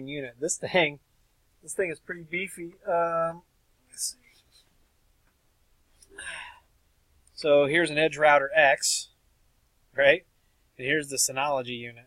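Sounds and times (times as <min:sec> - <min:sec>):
faint handling sounds: 0:03.9 - 0:06.2.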